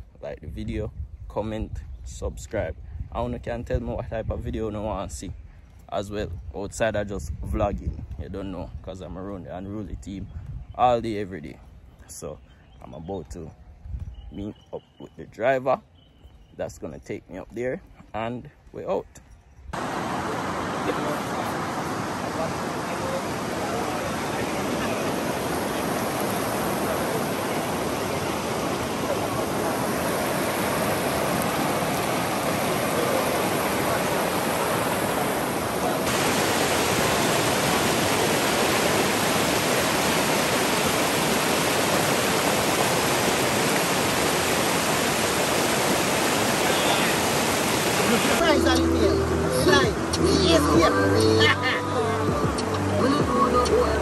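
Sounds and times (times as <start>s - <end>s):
river water rushing over rocks: 19.8s - 54.0s.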